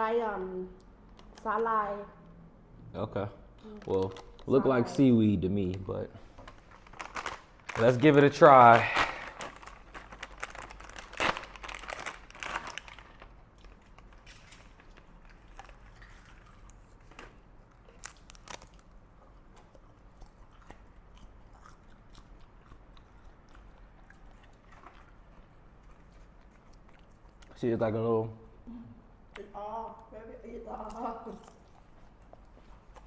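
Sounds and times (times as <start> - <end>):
plastic packet crinkling and tearing: 3.7 - 5.0, 6.4 - 19.0
crunching and chewing: 6.5 - 27.7, 30.8 - 33.0.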